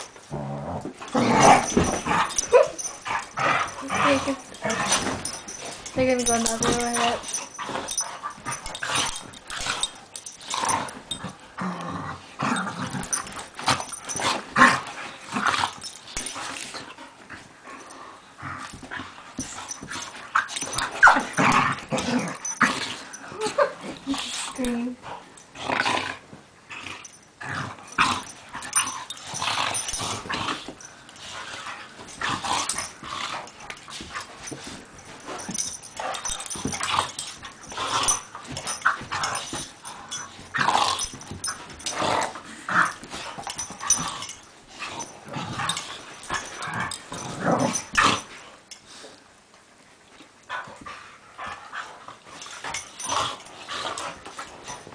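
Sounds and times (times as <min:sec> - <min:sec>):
dogs play growling: 0:00.0 - 0:49.3, 0:50.1 - 0:54.9.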